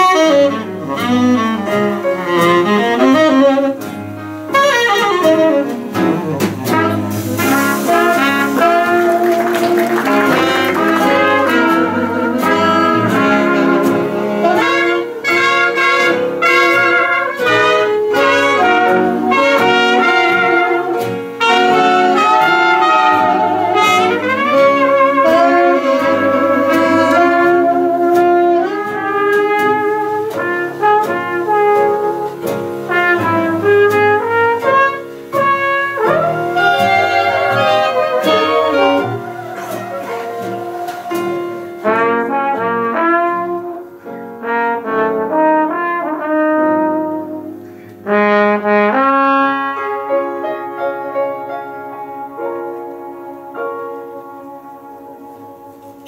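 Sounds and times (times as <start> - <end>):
jazz band playing a ballad: 0.0 - 56.0.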